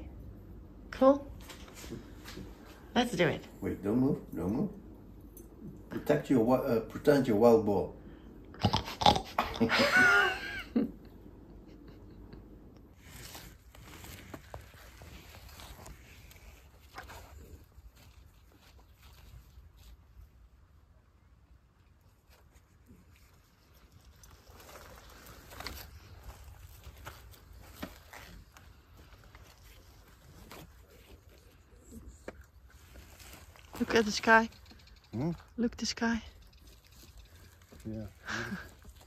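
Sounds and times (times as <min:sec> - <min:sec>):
low steady rumble: 0:00.0 - 0:08.6
handling clicks and rustles: 0:22.1 - 0:35.6.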